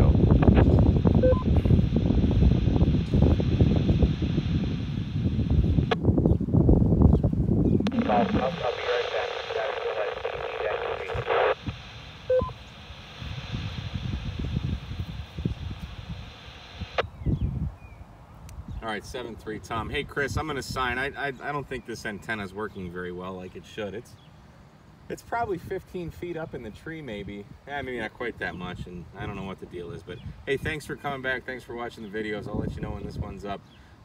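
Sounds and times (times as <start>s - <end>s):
radio voice with static: 0.0s - 6.0s, 7.9s - 17.0s
short beep: 1.2s - 1.6s, 12.3s - 12.6s.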